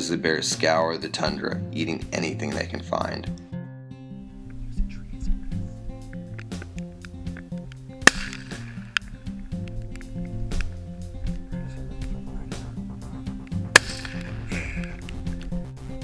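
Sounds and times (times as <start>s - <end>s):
background music: 0.0s - 16.0s
rifle shots with echo: 8.0s - 9.1s, 13.7s - 14.6s.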